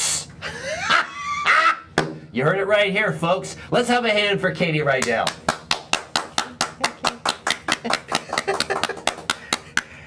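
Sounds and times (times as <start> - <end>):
hands clapping: 5.0 - 10.0.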